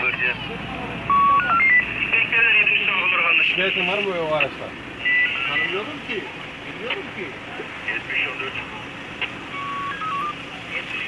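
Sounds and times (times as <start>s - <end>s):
low background voices: 0.0s - 11.0s
electronic beeps: 1.1s - 2.2s, 5.0s - 5.9s, 9.5s - 10.4s.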